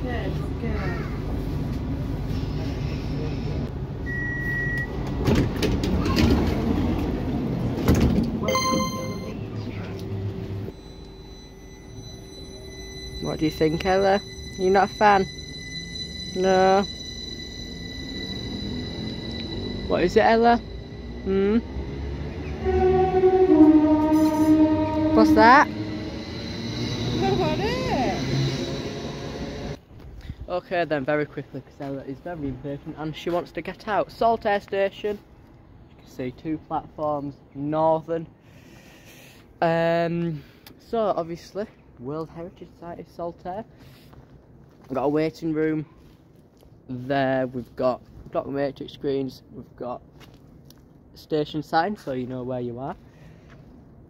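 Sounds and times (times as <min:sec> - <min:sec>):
standing train hum: 0:00.0 - 0:30.2
single beep: 0:04.0 - 0:05.0, 0:08.4 - 0:09.4
beeping chime: 0:08.4 - 0:09.6, 0:10.7 - 0:22.5
high thin whine: 0:10.8 - 0:23.2
electric train running: 0:10.8 - 0:29.8.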